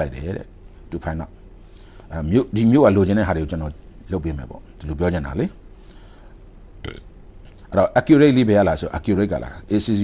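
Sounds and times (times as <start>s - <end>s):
faint low hum: 0.0s - 10.0s
man speaking: 2.1s - 5.6s.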